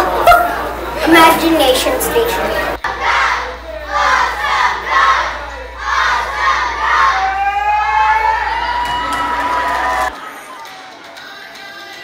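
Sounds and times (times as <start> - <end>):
children shouting and cheering: 2.9 - 10.8
long rising shout: 5.8 - 10.1.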